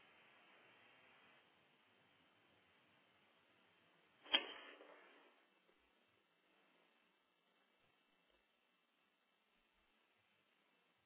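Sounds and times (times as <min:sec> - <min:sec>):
faint hiss: 0:00.0 - 0:11.0
sharp click: 0:04.2 - 0:05.0.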